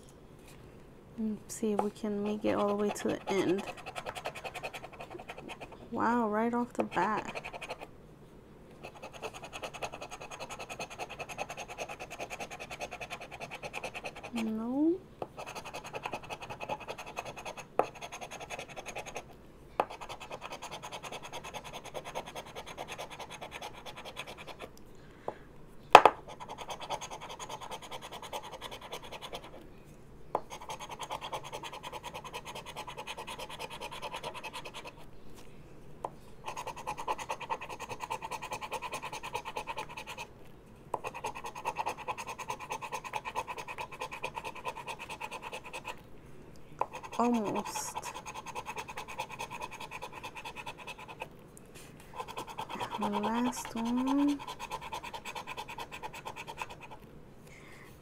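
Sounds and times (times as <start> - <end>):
scratch card being scratched: 2.1 - 5.8, 6.8 - 7.9, 8.8 - 14.6, 15.4 - 19.3, 19.9 - 24.7, 26.3 - 29.6, 30.5 - 35.0, 36.4 - 40.3, 41.0 - 46.0, 46.8 - 51.3, 52.2 - 57.0.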